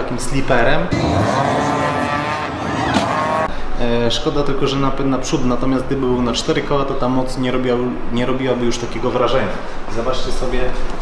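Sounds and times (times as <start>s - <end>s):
car engines accelerating hard: 0.9s - 3.5s.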